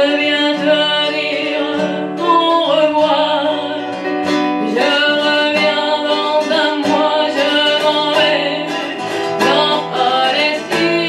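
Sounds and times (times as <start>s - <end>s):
plucked acoustic guitar chords: 0.0s - 11.0s
woman singing: 0.0s - 11.0s.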